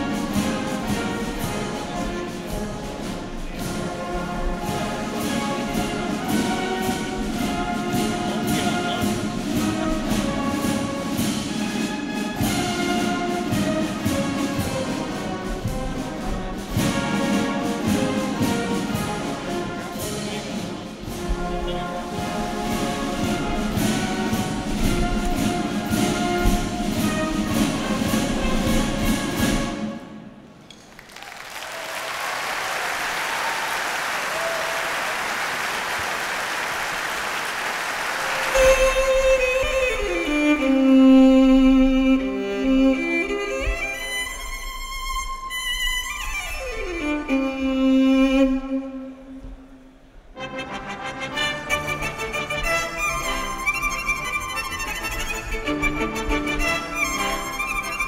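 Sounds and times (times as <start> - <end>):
brass band playing: 0.0 - 30.4, 34.1 - 44.7, 50.2 - 58.0
audience applause: 30.8 - 39.7
solo violin sliding notes: 38.3 - 49.3, 51.4 - 58.0.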